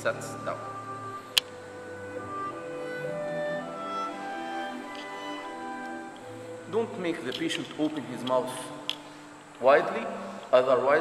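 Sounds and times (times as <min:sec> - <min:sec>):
soft bowed string music: 0:00.0 - 0:11.0.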